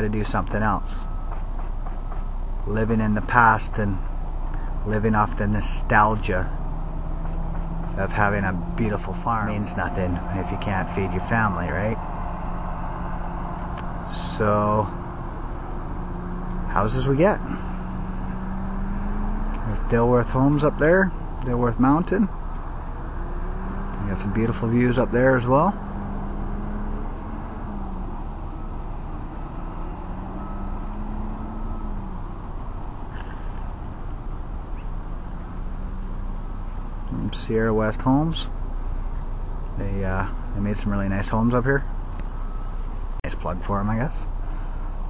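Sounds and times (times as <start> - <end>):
car engine hum: 0.0 - 45.0
road noise inside car: 0.0 - 45.0
steady low rumble: 2.4 - 18.4.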